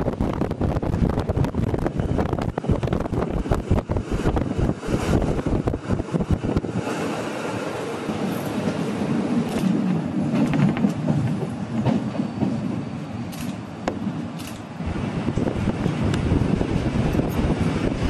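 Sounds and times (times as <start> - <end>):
train wheels clicking on rails: 0.2 - 18.0.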